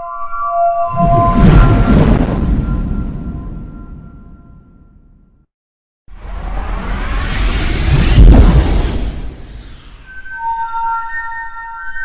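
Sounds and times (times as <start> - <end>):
loud whooshing burst: 6.2 - 10.1.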